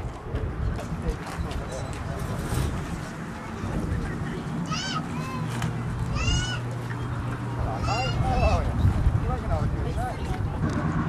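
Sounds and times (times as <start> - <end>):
gull mewing cries: 6.1 - 6.7, 7.7 - 8.6.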